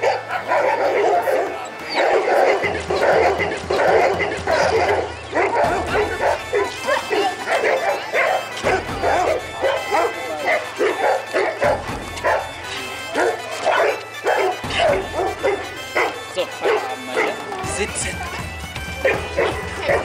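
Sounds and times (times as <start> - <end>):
dogs barking: 0.0 - 20.0
music playing: 0.0 - 20.0.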